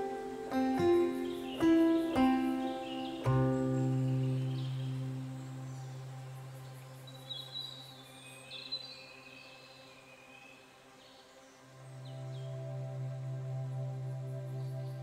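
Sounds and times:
soft ambient music: 0.0s - 15.0s
bird-like chirps: 0.6s - 10.1s.

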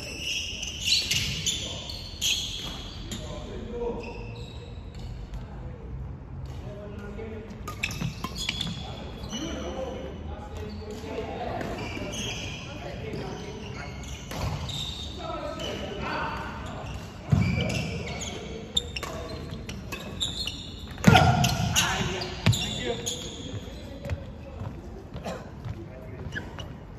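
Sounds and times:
shoes squeaking on floor: 0.0s - 5.6s, 7.5s - 26.9s.

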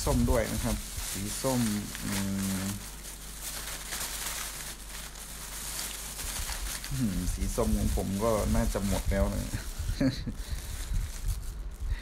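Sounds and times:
background hiss with low hum: 0.0s - 12.0s
man humming mmm: 6.9s - 7.4s.

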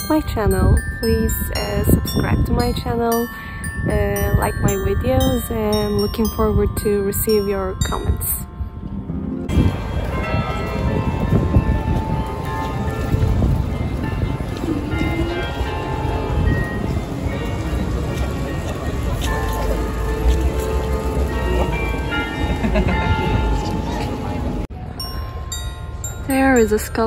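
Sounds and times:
steady low rumble: 0.0s - 24.8s
bells ringing: 0.0s - 27.0s.

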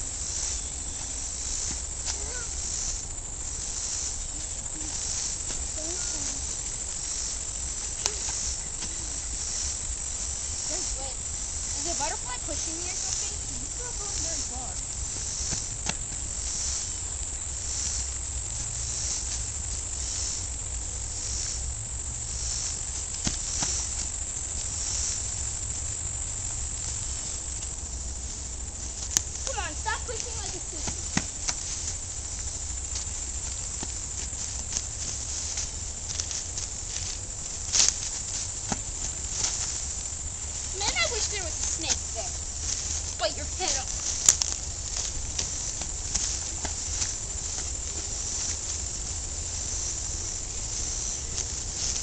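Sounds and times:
insects chorus: 0.0s - 52.0s.

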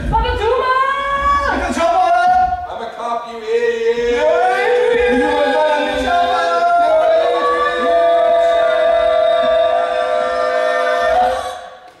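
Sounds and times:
voices singing a held chord: 3.6s - 11.9s.

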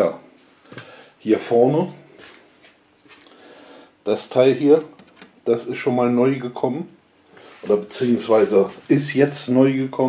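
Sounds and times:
soft handling rustles: 7.4s - 9.2s.

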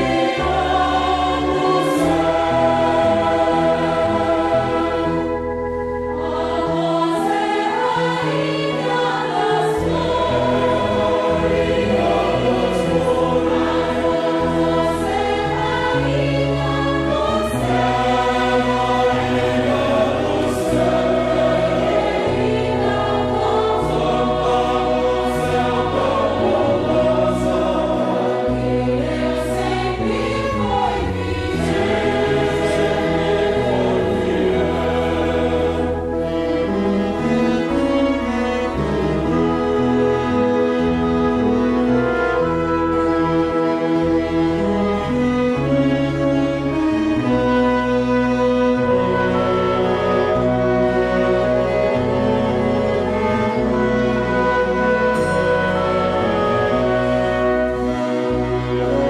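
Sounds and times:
mixed choir singing a hymn: 0.0s - 59.0s
small orchestra playing: 0.0s - 59.0s.

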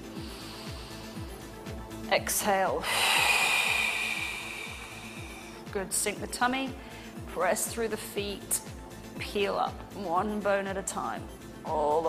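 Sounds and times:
background music with steady beat: 0.0s - 12.0s.

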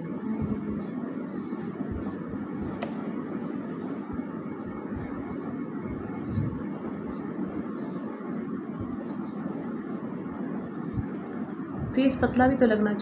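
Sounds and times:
background hum and hiss: 0.0s - 13.0s
soft low thumps: 0.3s - 0.9s.

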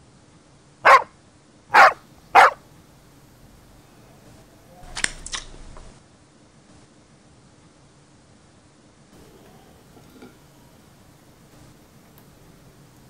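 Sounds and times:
dog barking: 0.8s - 2.7s.

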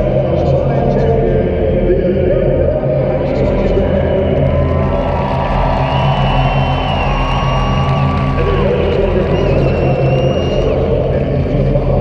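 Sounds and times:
stadium crowd din: 2.4s - 12.0s.

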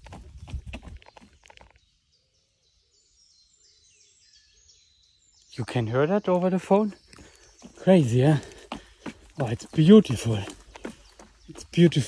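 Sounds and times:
running footsteps on wooden boardwalk: 0.0s - 1.7s, 6.6s - 12.0s.

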